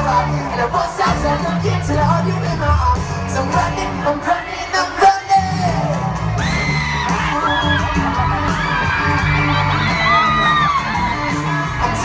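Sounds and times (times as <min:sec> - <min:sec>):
crowd screaming and whooping: 0:00.0 - 0:12.0
live pop band playing: 0:00.0 - 0:12.0.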